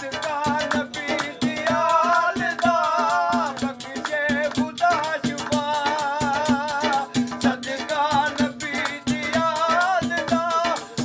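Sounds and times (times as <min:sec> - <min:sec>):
hands beating steel pots: 0:00.0 - 0:11.0
man singing: 0:00.0 - 0:11.0.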